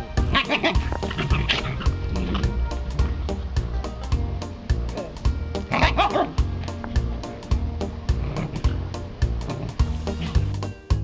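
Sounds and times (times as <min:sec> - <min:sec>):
music with steady beat: 0:00.0 - 0:11.0
dog yipping call: 0:05.7 - 0:06.4.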